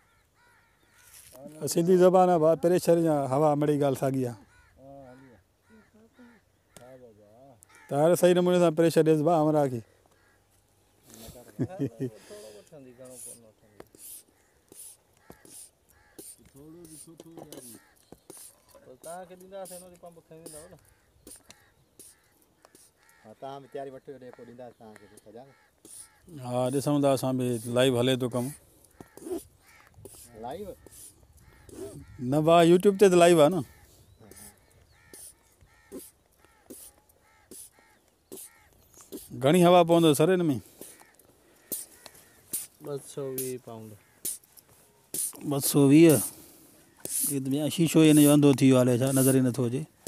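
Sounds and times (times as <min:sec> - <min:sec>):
hand pump hissing air: 0:13.0 - 0:23.0, 0:25.8 - 0:26.1, 0:29.2 - 0:32.0, 0:35.1 - 0:39.4, 0:40.7 - 0:41.0, 0:41.6 - 0:42.8, 0:43.4 - 0:43.6, 0:44.2 - 0:49.6.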